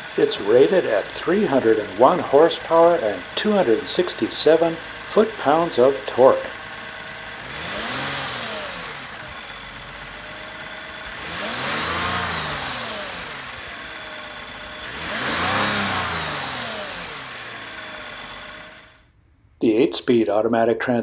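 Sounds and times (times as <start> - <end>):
car engine idling and revving: 0.0 - 19.1.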